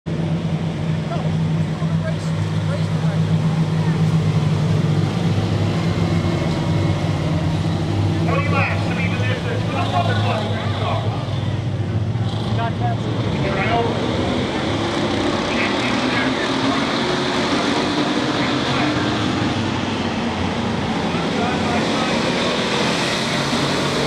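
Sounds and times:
stock car engines droning: 0:00.1 - 0:24.0.

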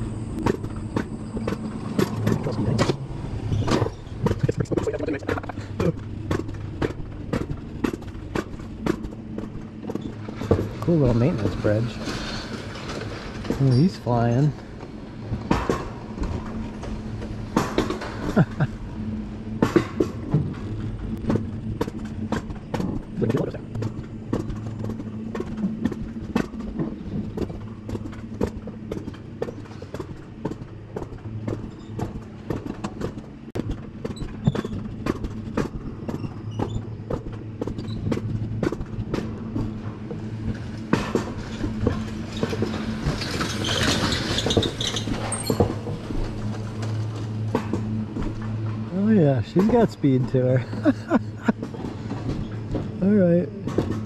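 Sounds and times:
coaster wheels rolling hum: 0:00.0 - 0:54.0
track clicks and clacks: 0:00.0 - 0:54.0.

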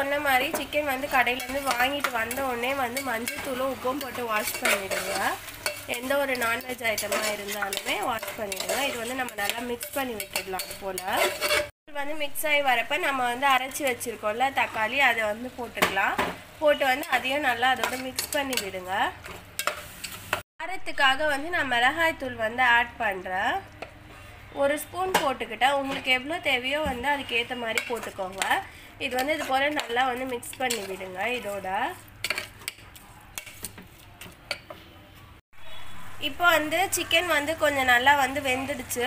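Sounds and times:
metal spoon scraping a pot: 0:00.1 - 0:11.7, 0:16.8 - 0:20.4, 0:25.1 - 0:34.8
spoon clinking against pan: 0:00.4 - 0:11.7.

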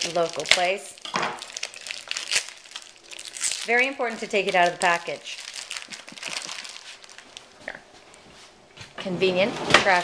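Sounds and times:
plastic packaging crinkling: 0:00.0 - 0:08.3.

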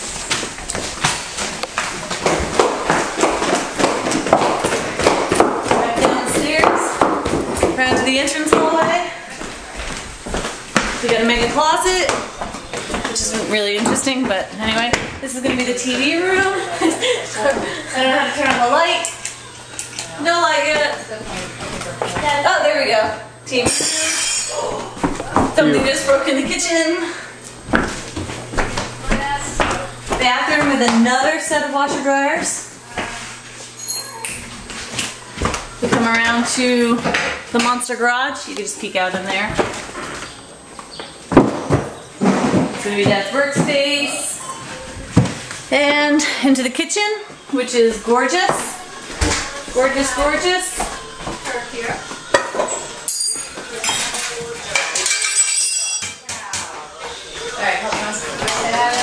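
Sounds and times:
footsteps on wooden stairs: 0:00.0 - 0:19.0, 0:20.4 - 0:23.2, 0:24.7 - 0:33.7, 0:47.3 - 0:52.9, 0:57.3 - 0:59.0.

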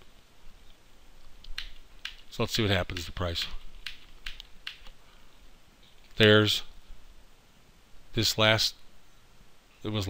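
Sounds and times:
faint microphone hiss: 0:00.0 - 0:10.0.

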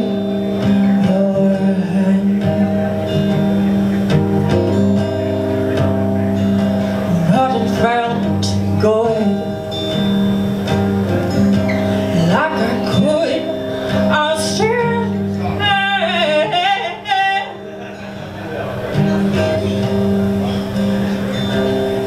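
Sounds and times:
woman singing: 0:00.0 - 0:02.6, 0:07.1 - 0:09.7, 0:12.1 - 0:17.6
acoustic guitar chords: 0:00.0 - 0:22.0.

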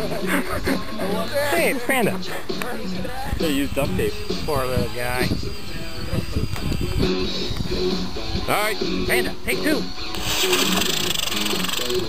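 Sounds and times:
rocket motor hissing: 0:10.1 - 0:12.0.

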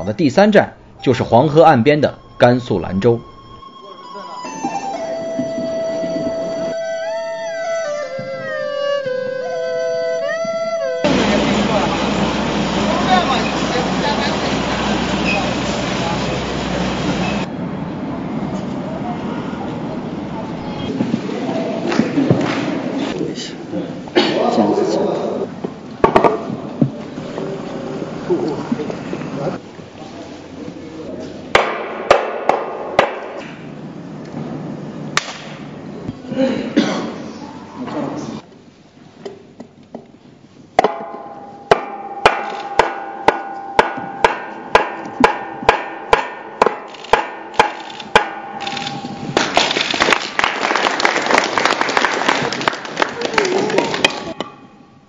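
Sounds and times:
indistinct voices: 0:00.0 - 0:05.0
traffic noise: 0:10.4 - 0:24.3, 0:25.4 - 0:38.5.

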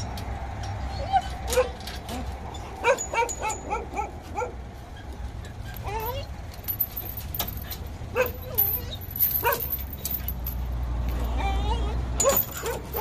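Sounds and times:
dog whining and yipping: 0:00.9 - 0:06.3, 0:08.2 - 0:09.7, 0:11.2 - 0:13.0.

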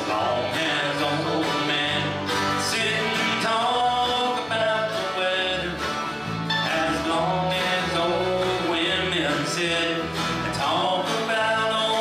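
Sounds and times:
acoustic guitars: 0:00.0 - 0:12.0
electric bass: 0:00.0 - 0:12.0
mandolin: 0:00.0 - 0:12.0
person singing: 0:00.0 - 0:12.0.

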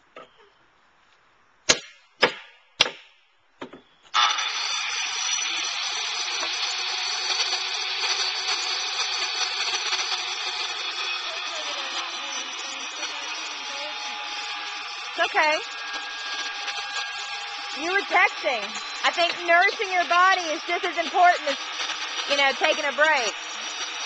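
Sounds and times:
sharp knocks: 0:01.7 - 0:03.9
circular saw cutting wood: 0:04.1 - 0:24.0.

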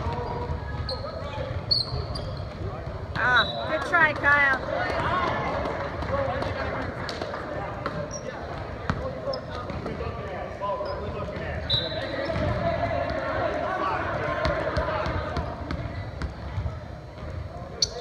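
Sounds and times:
sneakers squeaking on floor: 0:00.0 - 0:03.8, 0:07.9 - 0:12.6, 0:15.1 - 0:18.0
ball bouncing on hardwood court: 0:07.8 - 0:10.0, 0:14.4 - 0:17.4.

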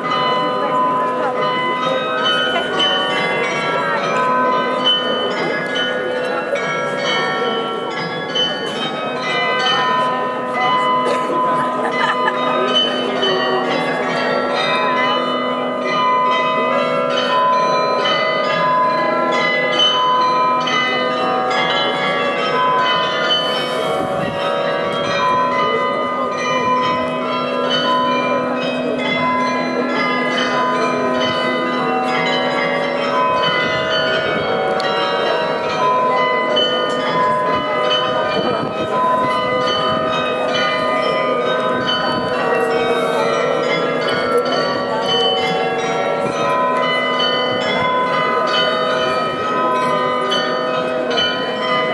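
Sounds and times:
bells playing a tune: 0:00.0 - 0:51.9.

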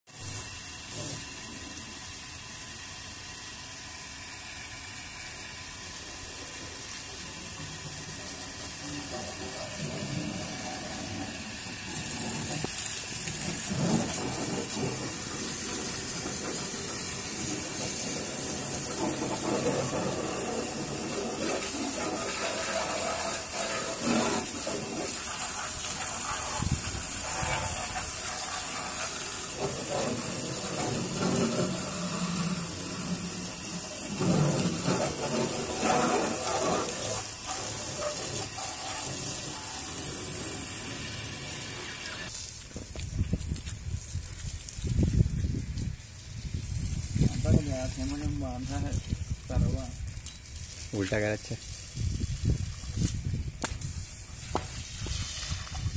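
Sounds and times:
hose spray hissing on car: 0:00.1 - 0:55.9
water splashing on panels: 0:04.7 - 0:45.1.

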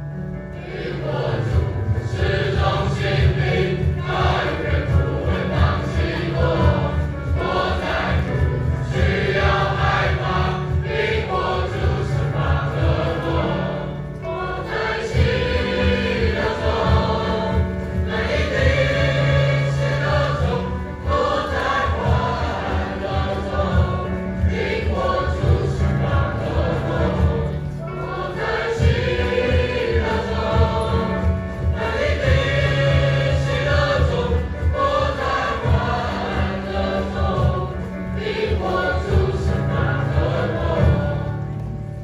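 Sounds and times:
children's choir singing a hymn: 0:00.0 - 0:42.0.

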